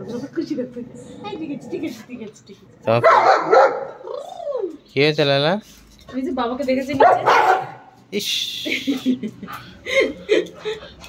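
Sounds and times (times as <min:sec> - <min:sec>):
dogs barking: 0:02.9 - 0:04.1, 0:06.9 - 0:08.0.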